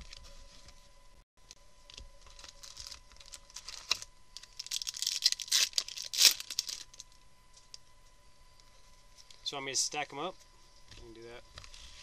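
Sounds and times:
foil wrapper crinkling and tearing: 2.2s - 7.1s.

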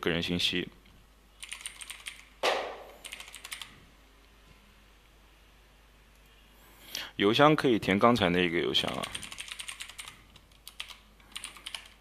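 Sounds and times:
typing on computer keyboard: 1.4s - 2.3s, 3.0s - 3.7s, 8.9s - 12.0s.

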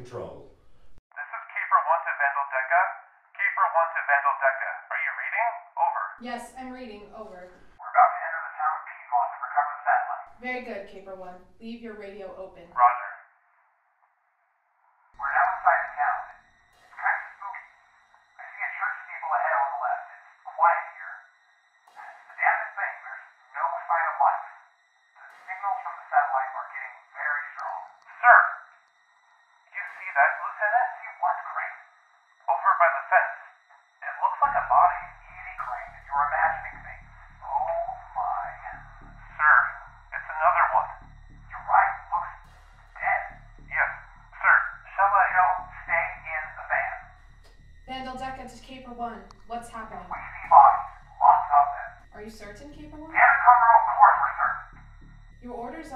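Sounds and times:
radio voice chatter: 0.0s - 0.4s, 1.2s - 13.1s, 15.2s - 16.2s, 18.4s - 21.1s, 22.3s - 24.4s, 25.5s - 28.5s, 29.8s - 31.7s, 32.5s - 42.4s, 43.0s - 47.1s, 47.9s - 54.7s
low pulsing rumble: 34.4s - 55.9s.

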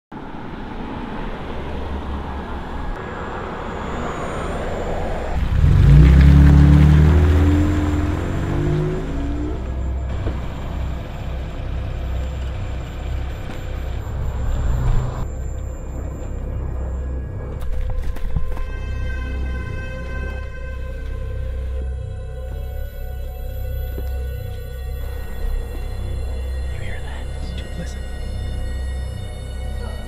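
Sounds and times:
road noise: 0.1s - 30.0s
pickup truck engine: 1.2s - 18.7s.

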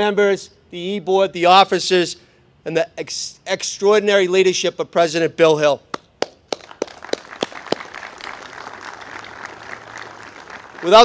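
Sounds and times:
sharp single handclaps: 5.9s - 10.8s
crowd clapping: 6.2s - 11.0s.

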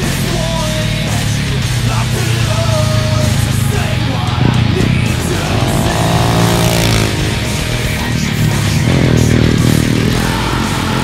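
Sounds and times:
loud rock music with guitar: 0.0s - 11.0s
motorcycle engine passing by: 2.2s - 11.0s.

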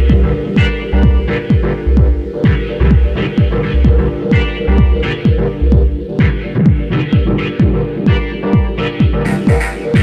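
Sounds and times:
faint ticking hi-hats: 0.0s - 10.0s
kick drum beating: 0.0s - 10.0s.

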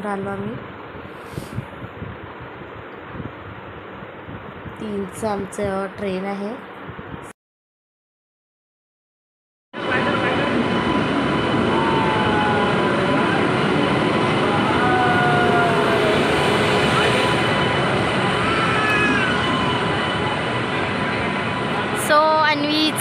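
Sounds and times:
train rushing noise: 9.8s - 23.0s.

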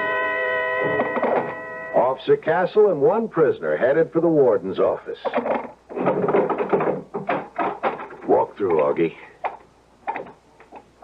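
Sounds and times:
rough noisy gate sound: 0.0s - 2.1s.

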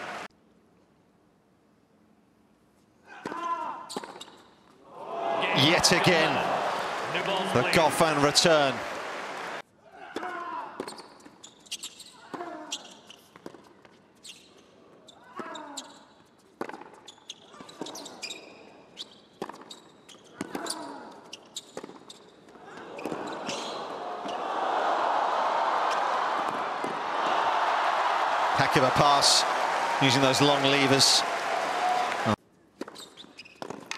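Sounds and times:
crowd cheering and applauding: 0.0s - 0.3s, 5.0s - 9.6s, 23.8s - 32.4s.

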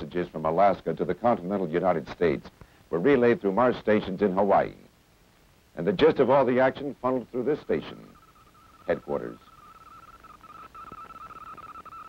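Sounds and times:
high-pitched electronic tone: 7.4s - 12.0s.

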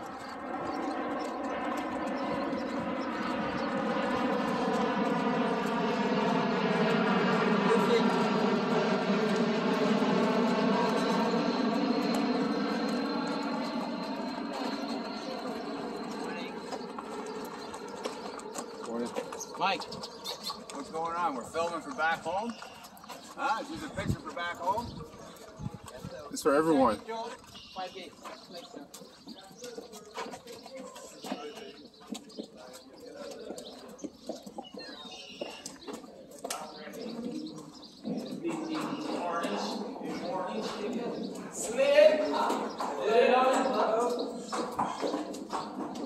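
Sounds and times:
engine drone with even tones: 0.0s - 25.5s
horse hooves on pavement: 0.0s - 46.0s
pigeons cooing: 9.8s - 21.7s, 28.2s - 46.0s.

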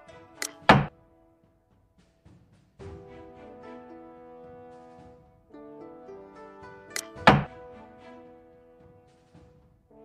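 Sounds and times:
background music: 0.0s - 10.0s
game piece clicking on board: 0.4s - 0.9s, 7.0s - 7.5s
game piece thunk landing: 0.4s - 0.9s, 7.0s - 7.5s.

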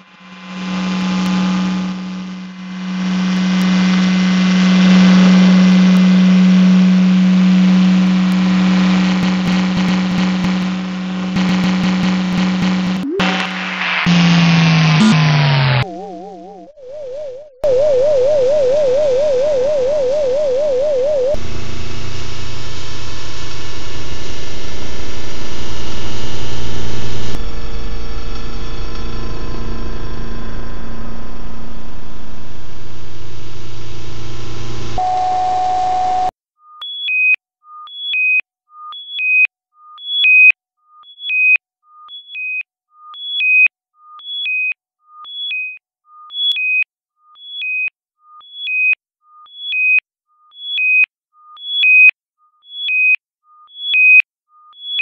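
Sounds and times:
buzzing synthesizer drone: 0.0s - 36.3s
warbling synthesizer tone: 11.4s - 21.4s
short beeps hopping between pitches: 13.0s - 14.3s, 15.8s - 21.4s, 35.0s - 36.3s.

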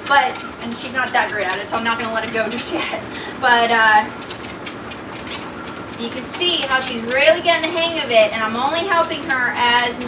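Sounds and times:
dog paws trotting on belt: 0.0s - 10.0s
motorized treadmill running: 0.0s - 10.0s.

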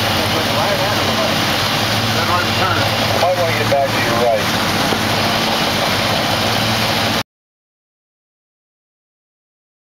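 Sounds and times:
outboard engines humming: 0.0s - 7.2s
wind and water rush: 0.0s - 7.2s.

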